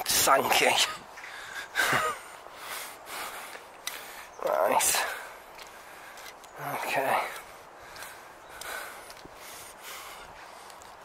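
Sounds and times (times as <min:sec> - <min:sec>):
man breathing and sighing: 0:00.8 - 0:06.5, 0:07.1 - 0:11.0.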